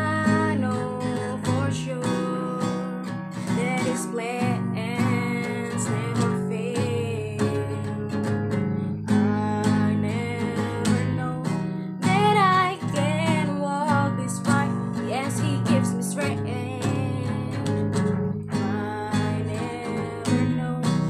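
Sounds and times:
strummed acoustic guitar: 0:00.0 - 0:21.0
woman singing: 0:00.0 - 0:21.0.

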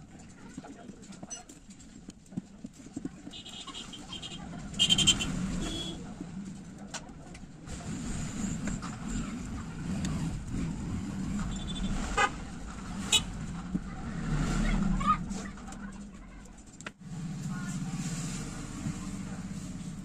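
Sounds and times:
vehicle engines running: 0:00.0 - 0:20.0.

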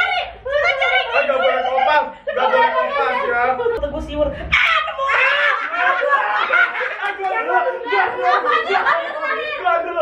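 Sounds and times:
group of people laughing: 0:00.4 - 0:03.8, 0:04.7 - 0:10.0.

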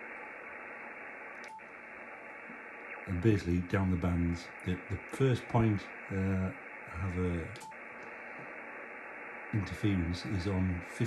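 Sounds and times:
radio receiver static hiss: 0:00.0 - 0:11.0.

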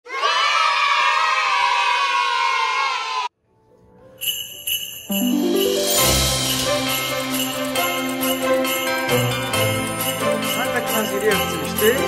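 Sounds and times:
children shouting and cheering: 0:00.0 - 0:03.3.

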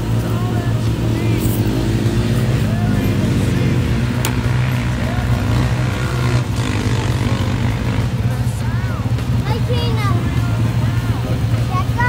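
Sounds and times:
quad bike engine running: 0:00.0 - 0:12.0.

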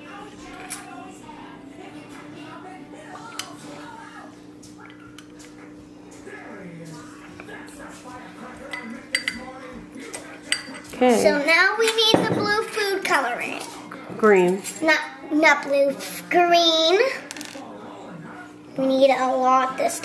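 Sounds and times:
spoon clinking against glass: 0:08.7 - 0:09.5, 0:10.5 - 0:10.9.

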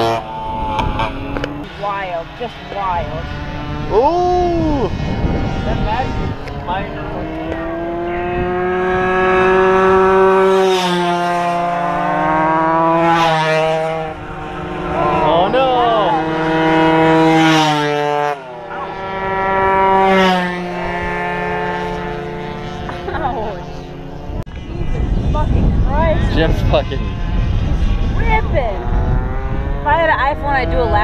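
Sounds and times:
moped engines passing: 0:00.0 - 0:31.0.

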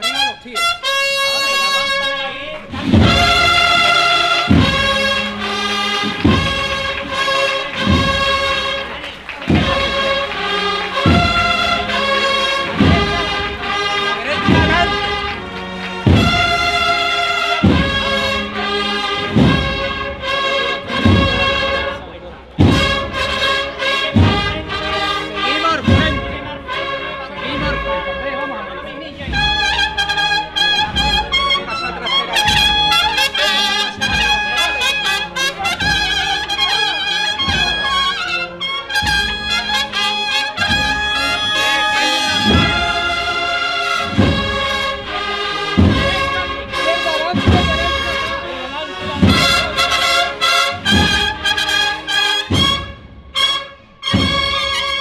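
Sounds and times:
cornets playing sustained chords: 0:00.0 - 0:55.0
bass drum beat: 0:02.7 - 0:28.2, 0:29.2 - 0:53.3, 0:54.1 - 0:55.0.

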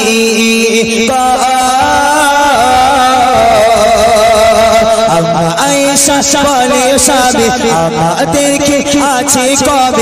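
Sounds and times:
man half-singing into microphone: 0:00.0 - 0:10.0.

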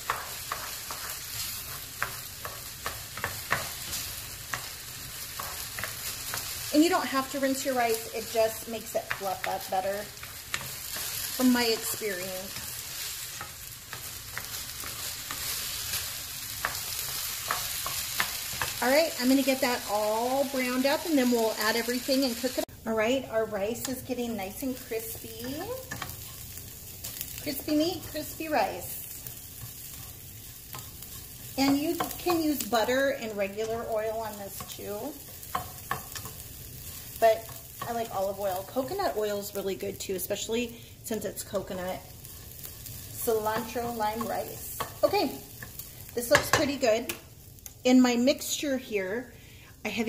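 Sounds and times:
spatula scraping and tapping: 0:00.0 - 0:06.5, 0:09.0 - 0:18.8, 0:25.4 - 0:28.4, 0:29.0 - 0:32.7, 0:33.5 - 0:38.1, 0:43.5 - 0:47.2
rice sizzling in a frying pan: 0:00.0 - 0:50.0.

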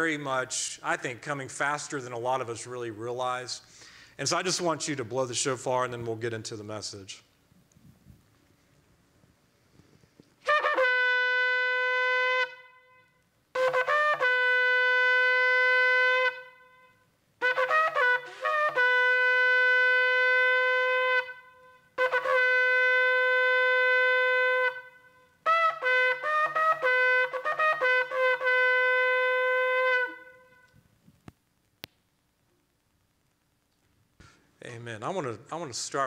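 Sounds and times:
shofar blast: 0:10.4 - 0:30.8
small clicks: 0:30.6 - 0:34.0.

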